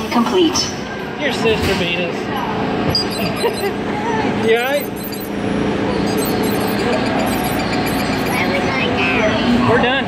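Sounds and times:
ride vehicle running noise: 0.9 - 10.0.

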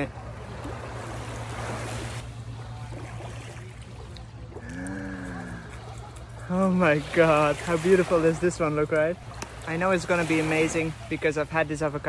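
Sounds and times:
sea surf: 0.0 - 12.0.

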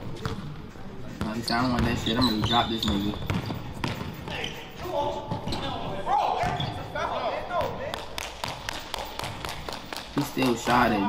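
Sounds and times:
basketball bouncing on court floor: 0.1 - 0.5, 1.2 - 4.4, 5.2 - 6.8, 7.6 - 10.9.

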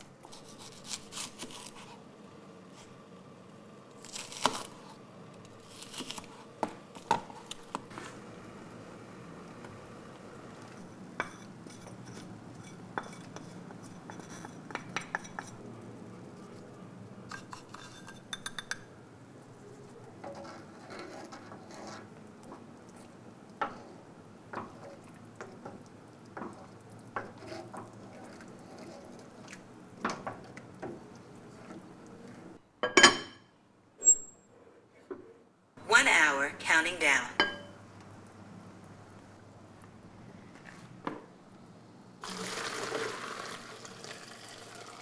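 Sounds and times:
dishes clattering: 32.8 - 33.5, 37.4 - 37.8.

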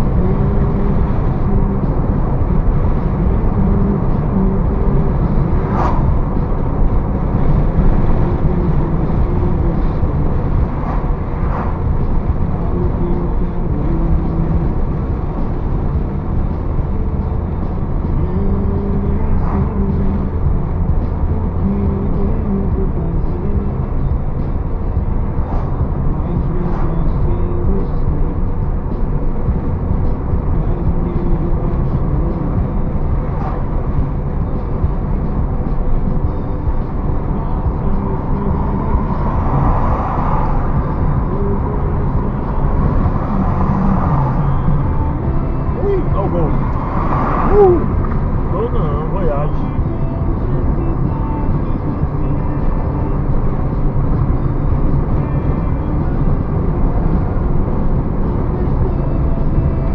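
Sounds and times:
car engine and road drone: 0.0 - 59.9
rushing noise: 0.0 - 59.9.

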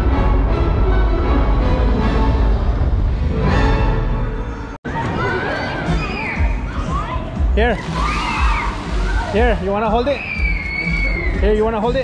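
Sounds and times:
background music: 0.0 - 12.0
fountain jets spraying water: 7.8 - 10.3.

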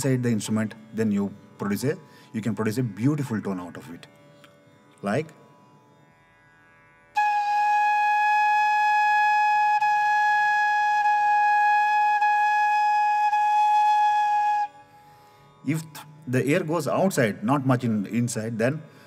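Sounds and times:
bamboo flute long held note: 7.2 - 14.9.

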